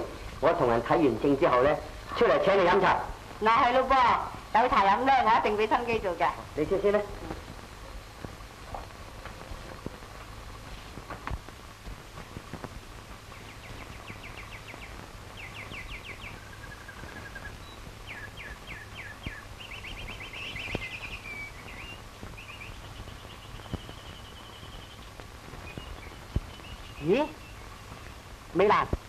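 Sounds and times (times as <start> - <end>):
low hum and hiss: 0.0 - 29.0
small birds chirping: 0.0 - 29.0.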